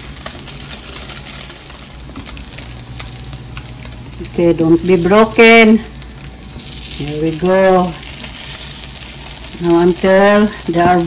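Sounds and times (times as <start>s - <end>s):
meat sizzling and popping in a pan: 0.0s - 11.0s.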